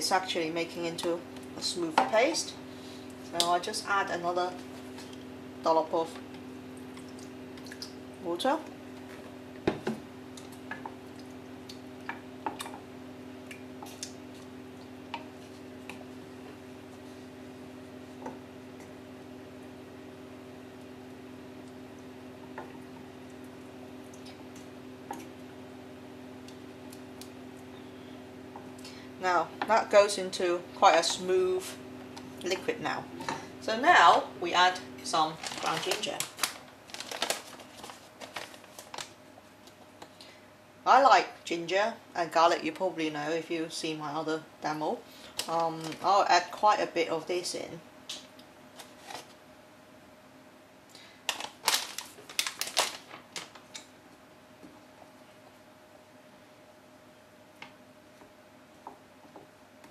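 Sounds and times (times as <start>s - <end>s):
steady low hum: 0.0s - 59.9s
plastic packet crinkling: 35.0s - 39.2s, 45.4s - 46.1s, 51.3s - 53.8s.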